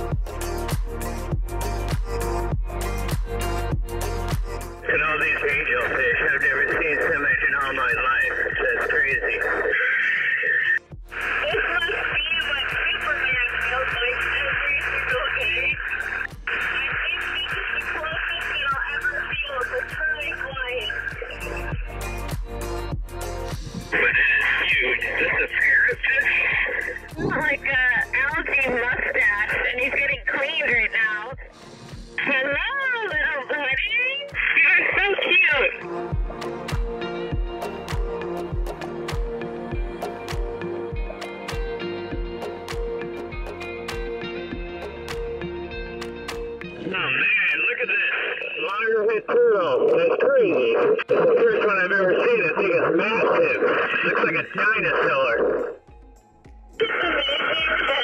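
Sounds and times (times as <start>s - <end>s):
background music: 0.0s - 58.0s
diver talking through radio: 4.8s - 21.9s, 23.8s - 31.5s, 32.2s - 35.9s, 46.8s - 55.8s, 56.8s - 58.0s.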